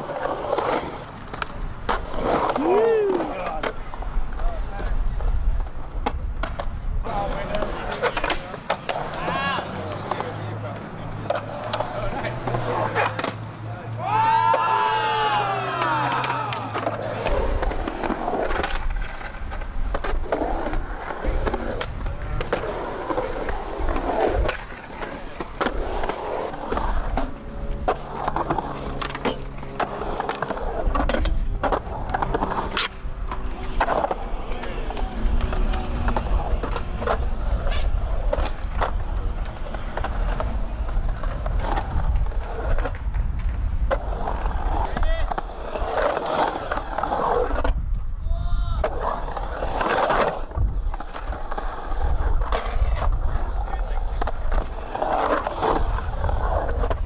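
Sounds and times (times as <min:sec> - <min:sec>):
skateboard clacks and knocks: 0:00.0 - 0:48.0
skateboard wheels rolling: 0:00.0 - 0:57.0.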